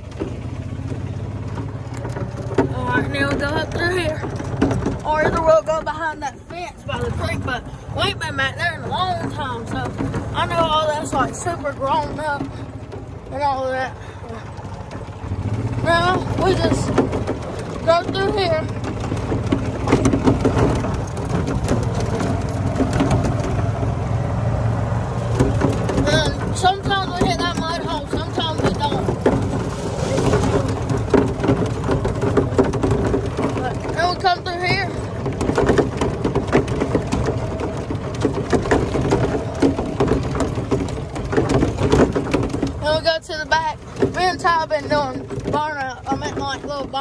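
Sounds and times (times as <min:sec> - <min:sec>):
cart body knocking and rattling: 0:00.0 - 0:47.0
golf cart running rumble: 0:00.0 - 0:47.0.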